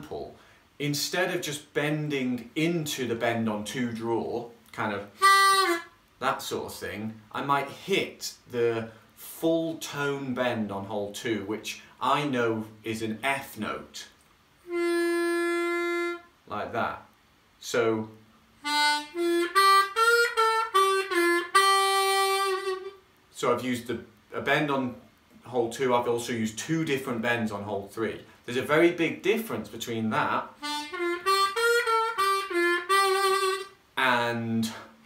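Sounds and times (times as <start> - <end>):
harmonica melody with bent notes: 5.0 - 6.1, 14.6 - 16.4, 18.6 - 23.0, 30.1 - 34.8.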